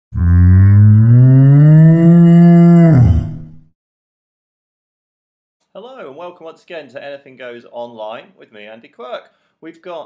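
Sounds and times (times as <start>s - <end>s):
cow mooing: 0.2s - 3.6s.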